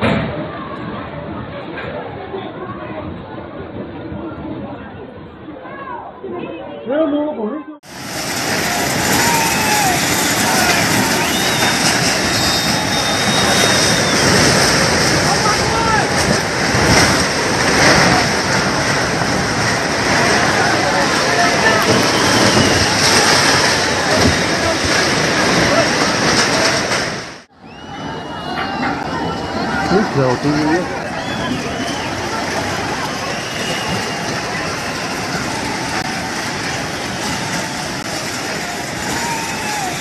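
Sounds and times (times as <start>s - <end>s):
buildings collapsing rumble: 0.0s - 5.6s, 7.8s - 40.0s
thin whistle: 9.5s - 14.5s, 21.9s - 23.1s, 27.6s - 28.7s, 31.1s - 32.3s, 33.2s - 35.2s.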